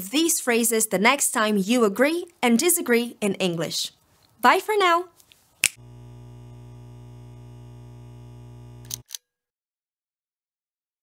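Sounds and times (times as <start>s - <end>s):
neon sign electrical hum: 5.6s - 9.0s.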